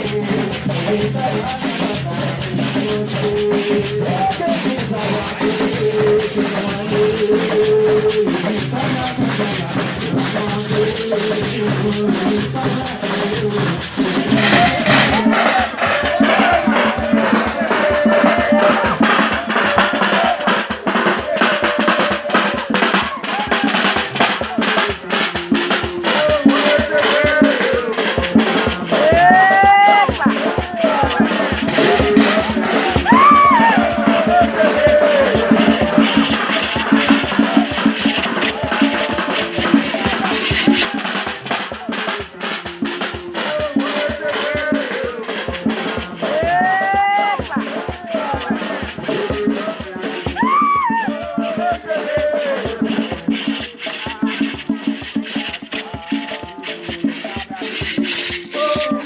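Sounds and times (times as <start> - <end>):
drums and rattles: 0.0 - 59.0
group singing: 0.0 - 59.0.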